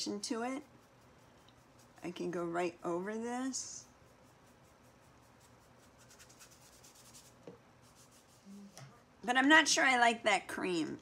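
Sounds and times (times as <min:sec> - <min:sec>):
paintbrush strokes on paper: 0:00.0 - 0:08.8.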